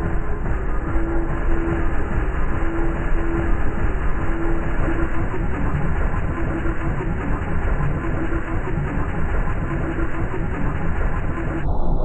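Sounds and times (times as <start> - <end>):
electronic music noise texture: 0.0 - 12.0.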